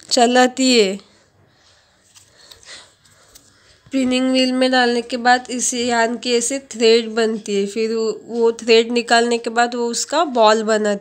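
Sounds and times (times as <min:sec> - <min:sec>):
soft breath near microphone: 0:01.0 - 0:04.0.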